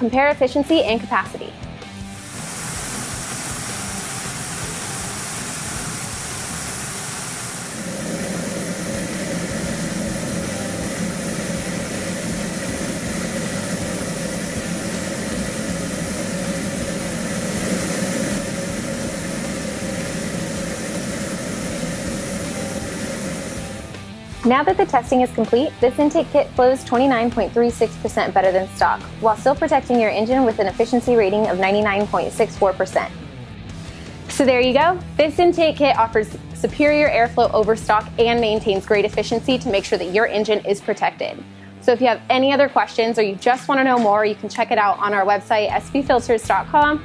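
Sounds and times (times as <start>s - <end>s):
steady rush of air: 1.9s - 24.6s.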